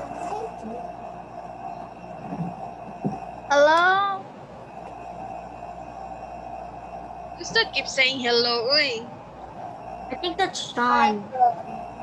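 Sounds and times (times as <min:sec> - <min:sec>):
constant hum: 0:00.0 - 0:12.0
held tone: 0:09.5 - 0:12.0.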